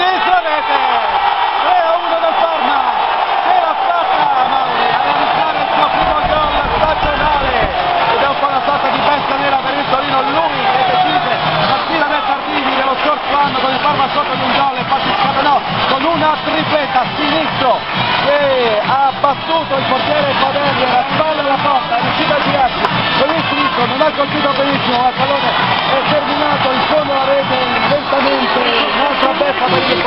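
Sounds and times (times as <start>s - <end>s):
stadium crowd cheering: 0.0s - 30.0s
commentator shouting excitedly: 18.2s - 30.0s.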